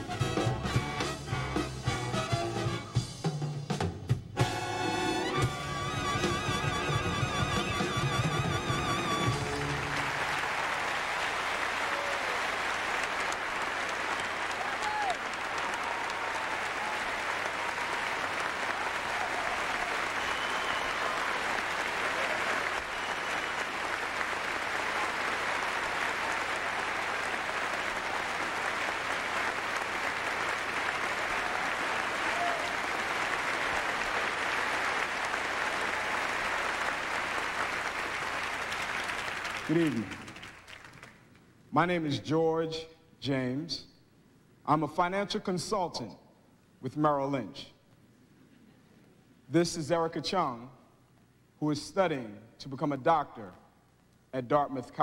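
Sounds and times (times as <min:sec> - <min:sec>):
audience applauding: 0:05.3 - 0:41.4.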